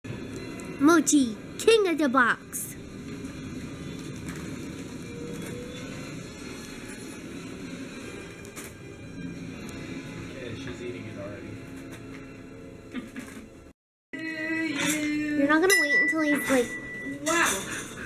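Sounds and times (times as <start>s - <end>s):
music: 0.1s - 18.0s.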